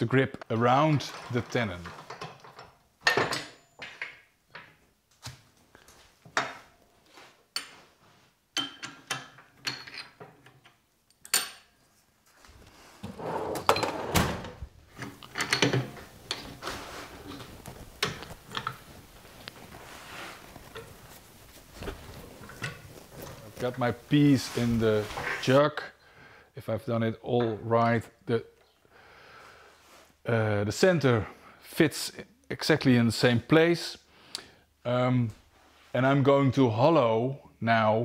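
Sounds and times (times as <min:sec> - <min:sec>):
low steady background noise: 0:00.0 - 0:38.0
metal clinks and knocks: 0:15.0 - 0:19.8.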